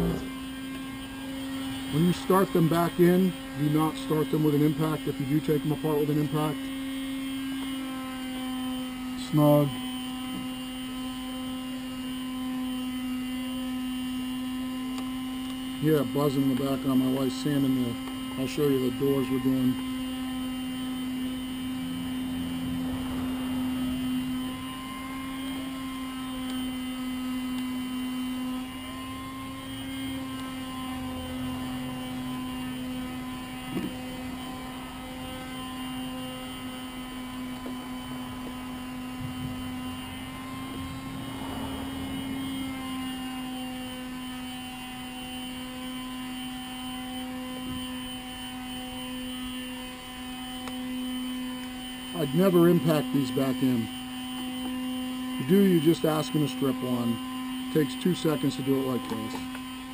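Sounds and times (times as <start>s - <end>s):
machine buzzing hum: 0.0s - 59.9s.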